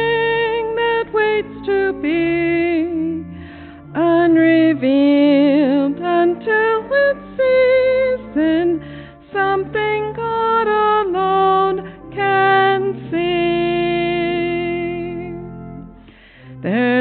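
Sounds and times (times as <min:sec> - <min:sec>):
woman singing a hymn: 0:00.0 - 0:15.6, 0:16.6 - 0:17.0
low sustained accompaniment notes: 0:00.0 - 0:17.0.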